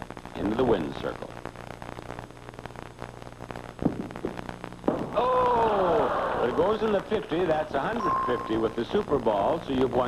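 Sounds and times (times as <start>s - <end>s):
audience rising oh: 5.1s - 6.6s.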